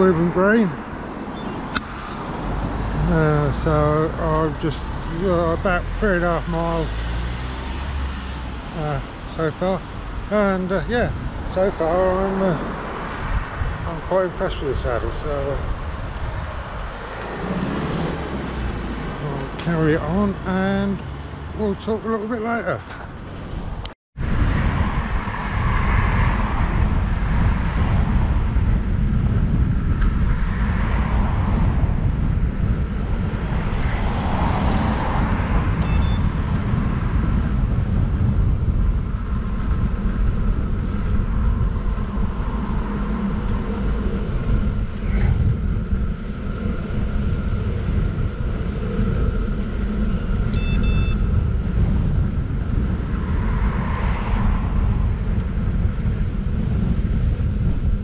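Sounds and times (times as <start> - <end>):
passing car road noise: 0.0 - 58.0
wind buffeting microphone: 0.0 - 58.0.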